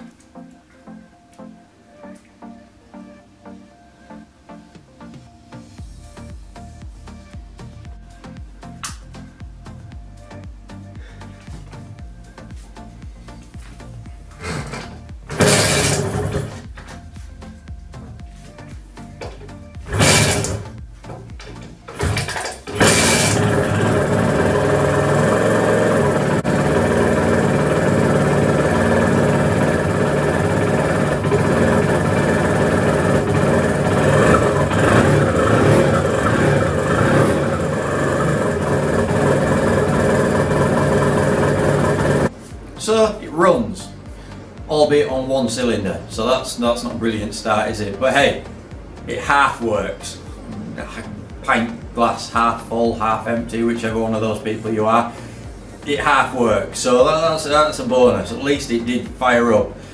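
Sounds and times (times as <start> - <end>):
two-stroke motorcycle engine running: 14.4 - 16.9, 19.2 - 42.3.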